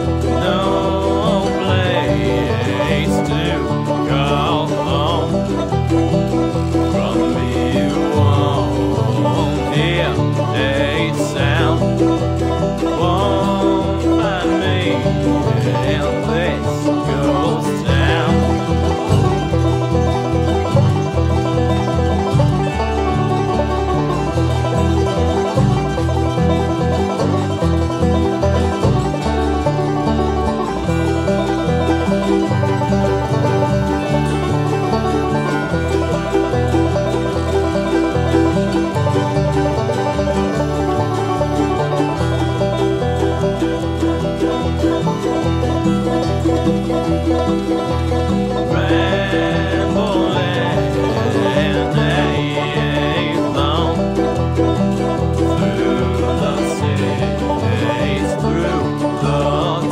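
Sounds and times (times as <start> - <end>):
banjo picking: 0.0 - 59.9
bass line: 0.0 - 59.9
guitar: 0.0 - 59.9.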